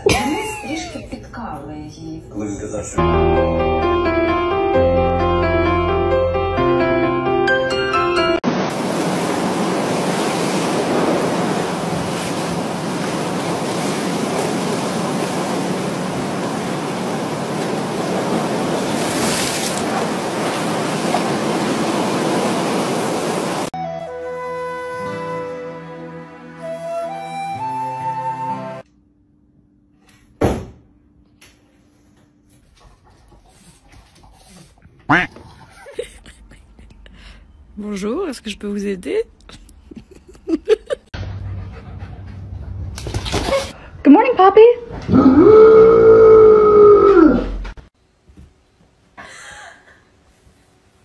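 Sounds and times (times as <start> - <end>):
waves breaking on sand: 8.4 - 23.7.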